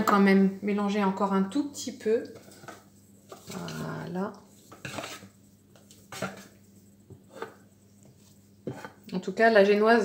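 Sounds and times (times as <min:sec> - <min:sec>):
spatula stirring foamy batter: 0:02.0 - 0:09.1.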